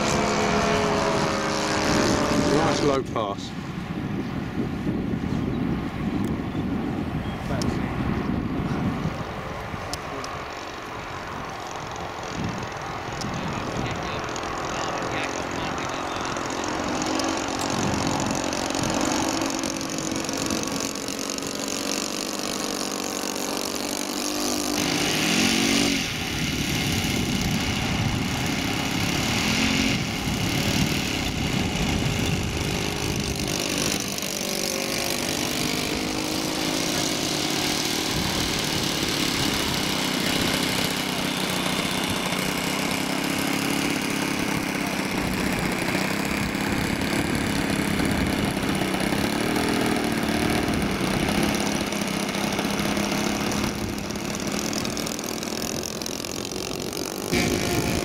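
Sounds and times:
model plane engine in flight: 0.0s - 58.0s.

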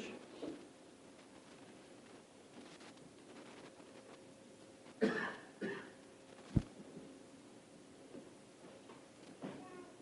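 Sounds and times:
person coughing: 5.0s - 6.0s.

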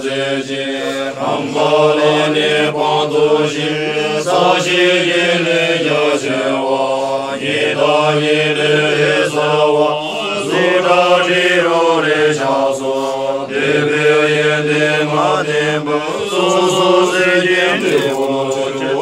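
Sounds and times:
men chanting in unison: 0.0s - 19.0s.

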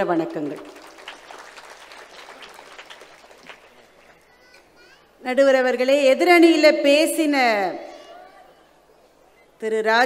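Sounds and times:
audience applause: 0.5s - 4.2s.

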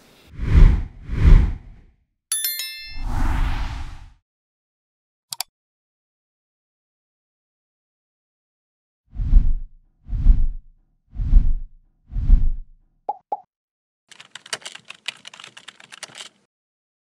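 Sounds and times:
rapid keyboard typing clicks: 14.1s - 16.5s.

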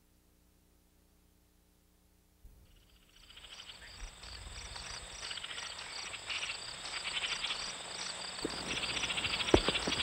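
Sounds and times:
insects and frogs chirping: 2.6s - 10.0s.

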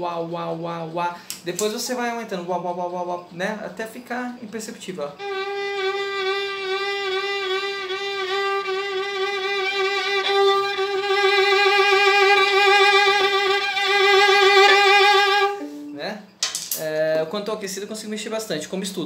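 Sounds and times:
violin note with wide vibrato: 5.2s - 16.0s.

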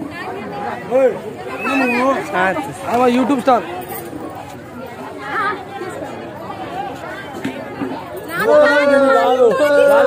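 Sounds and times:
people talking and chattering: 0.0s - 10.0s.

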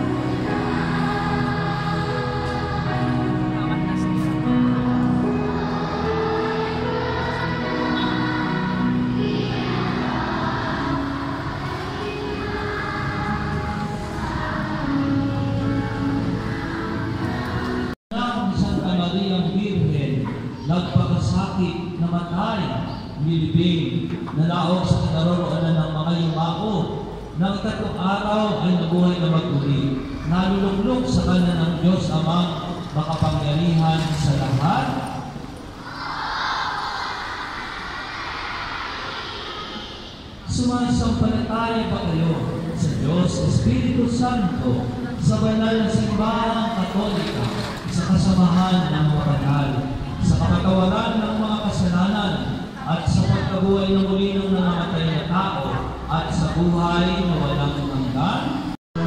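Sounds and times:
church music with held chords: 0.0s - 58.8s
congregation reciting prayer: 0.0s - 58.8s.

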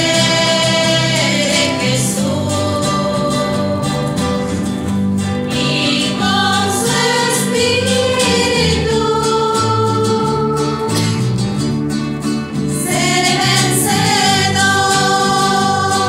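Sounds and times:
women singing a hymn: 0.0s - 4.7s, 5.4s - 11.2s, 12.7s - 16.0s
acoustic guitar: 0.0s - 16.0s.

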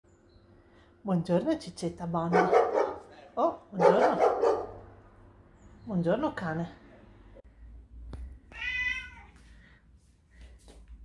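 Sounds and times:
cat meowing: 8.5s - 9.4s.

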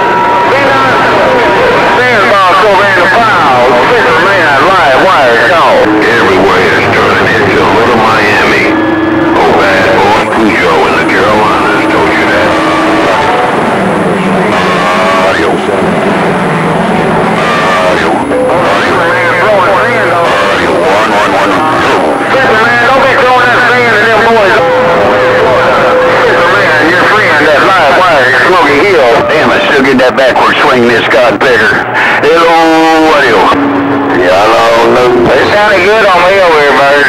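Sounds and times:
distorted radio voices: 0.0s - 37.0s
radio static: 0.0s - 37.0s.

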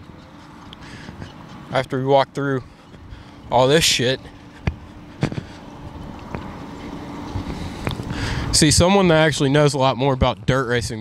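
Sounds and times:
wind noise on microphone: 4.6s - 9.4s.

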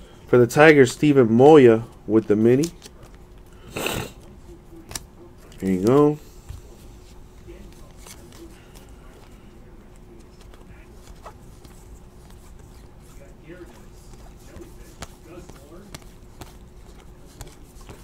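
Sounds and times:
faint steady hum: 0.0s - 18.0s
trading cards flipped by hand: 2.5s - 3.5s, 7.7s - 9.4s, 10.2s - 18.0s.

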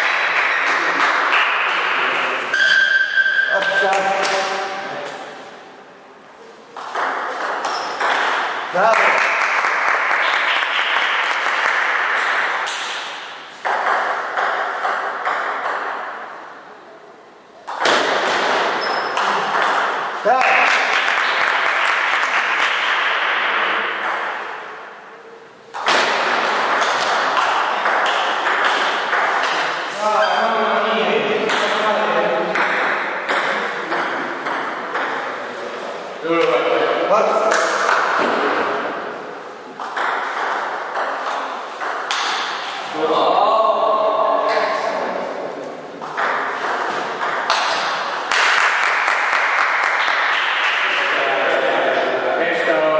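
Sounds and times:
ping pong ball bouncing on table: 6.8s - 8.5s, 12.2s - 16.2s, 17.7s - 24.4s, 25.8s - 29.7s, 32.5s - 35.4s, 39.8s - 42.7s, 46.0s - 50.5s
ping pong ball clicking off paddles: 6.8s - 8.6s, 10.2s - 16.3s, 17.7s - 24.6s, 25.7s - 29.9s, 32.5s - 35.4s, 39.8s - 42.8s, 46.0s - 50.8s.

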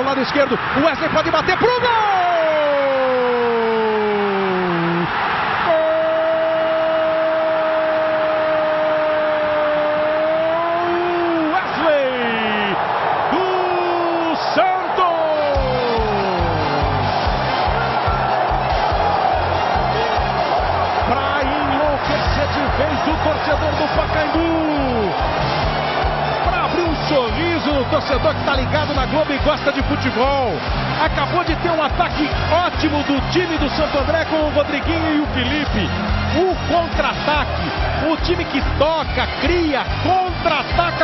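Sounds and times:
stadium crowd roaring: 0.0s - 41.0s
commentator's drawn-out goal cry: 0.5s - 16.8s, 19.8s - 25.3s.

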